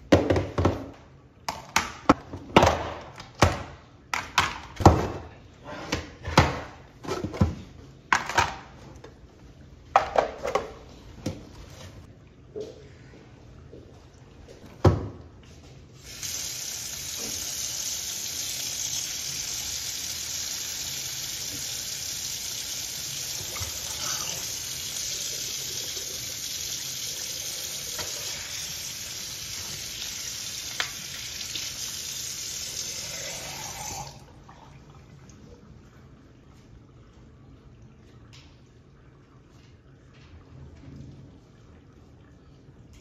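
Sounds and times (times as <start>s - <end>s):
tap water splashing into sink: 23.2s - 24.4s, 27.8s - 31.8s.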